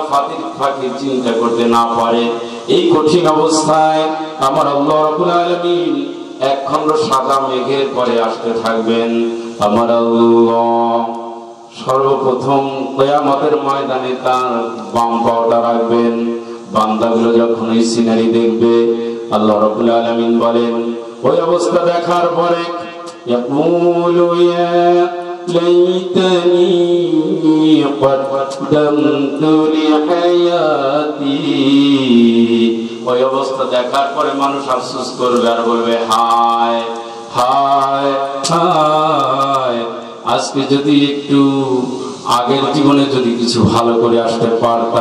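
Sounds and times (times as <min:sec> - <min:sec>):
man chanting: 0:00.0 - 0:45.0.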